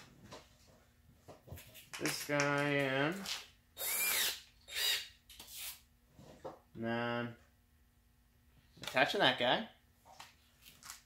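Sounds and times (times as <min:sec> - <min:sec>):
cordless drill running: 0:03.8 - 0:05.1.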